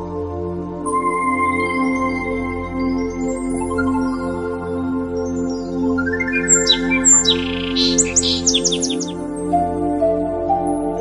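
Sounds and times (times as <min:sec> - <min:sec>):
calm instrumental music: 0:00.0 - 0:11.0
small bird chirping: 0:06.4 - 0:09.2.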